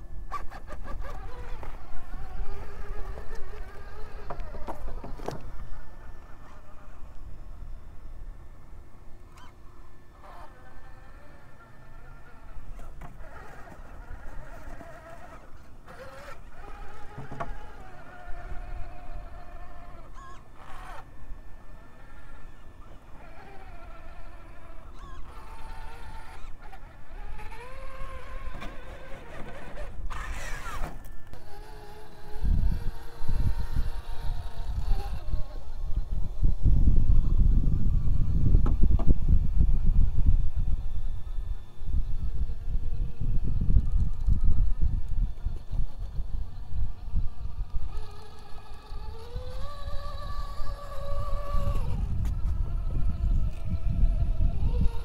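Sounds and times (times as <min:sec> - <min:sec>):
electric motor whining: 0:00.0 - 0:55.0.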